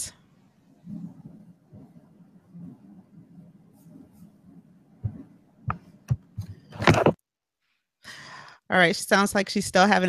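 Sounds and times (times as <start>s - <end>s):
thumps and sharp clicks: 5.0s - 7.2s.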